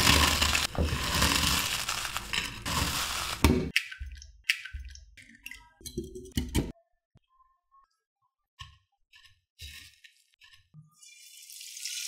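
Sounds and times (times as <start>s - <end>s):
potato chips being crushed: 0.0s - 3.6s.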